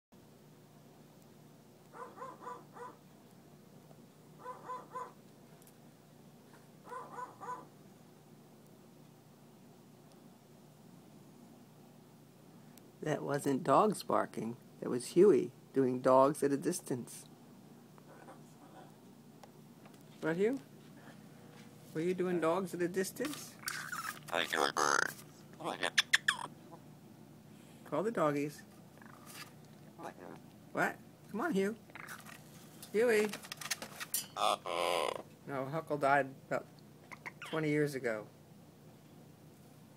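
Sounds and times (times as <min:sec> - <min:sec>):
parrot imitating dogs barking: 0:01.9 - 0:03.0, 0:04.4 - 0:05.2, 0:06.8 - 0:07.7, 0:23.6 - 0:26.8, 0:34.4 - 0:35.3, 0:37.1 - 0:37.6.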